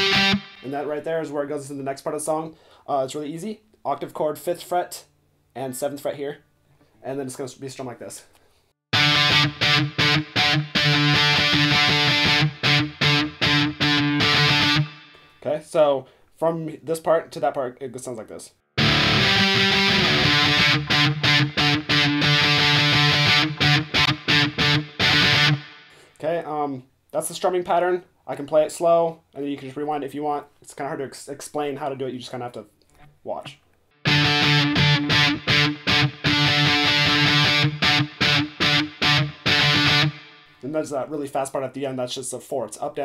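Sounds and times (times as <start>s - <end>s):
distorted electric guitar chords: 0.0s - 0.8s, 8.9s - 15.3s, 18.8s - 26.0s, 34.0s - 40.6s.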